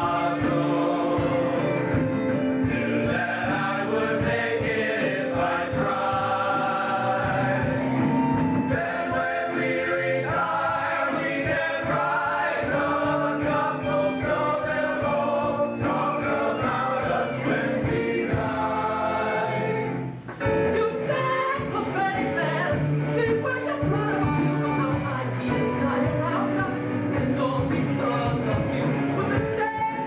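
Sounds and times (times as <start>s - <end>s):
choir singing with band: 0.0s - 20.2s.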